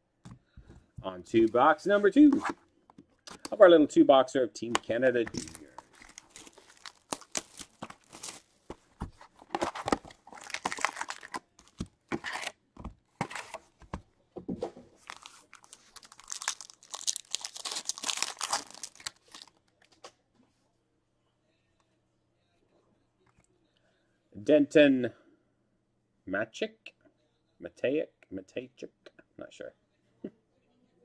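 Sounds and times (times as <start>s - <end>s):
foil packs tearing and crinkling: 5.3s - 8.5s, 9.4s - 12.5s, 15.0s - 19.6s.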